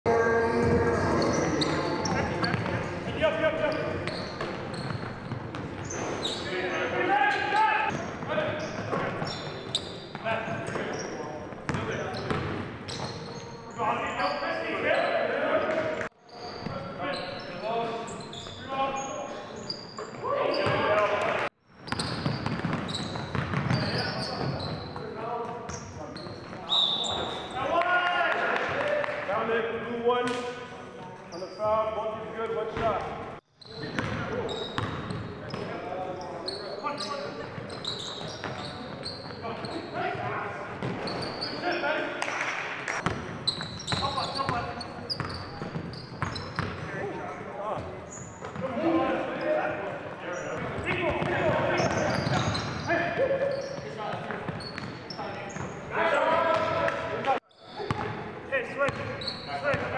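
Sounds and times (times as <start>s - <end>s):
players calling out: 0.1s - 21.5s.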